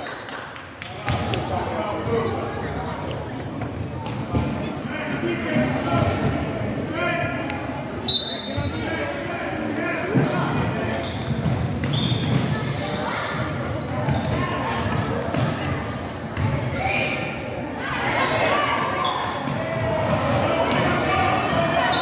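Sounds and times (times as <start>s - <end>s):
chatter of players and spectators: 0.0s - 22.0s
sneakers squeaking: 0.3s - 9.2s, 9.9s - 22.0s.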